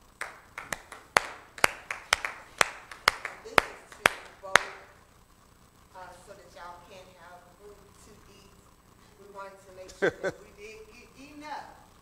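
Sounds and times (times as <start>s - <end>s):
light applause: 0.0s - 5.0s.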